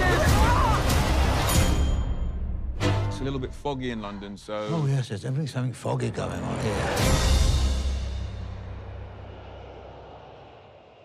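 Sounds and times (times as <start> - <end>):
jet engine rumble: 8.6 - 11.0.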